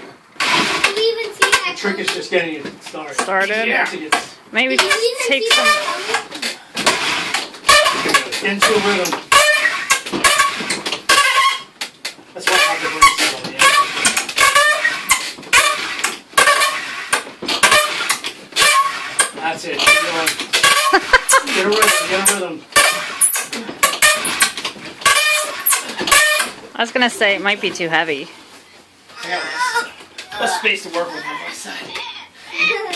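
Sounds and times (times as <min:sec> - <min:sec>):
wooden spindle squeaking: 0:04.8 - 0:06.3, 0:07.0 - 0:11.7, 0:12.5 - 0:26.6.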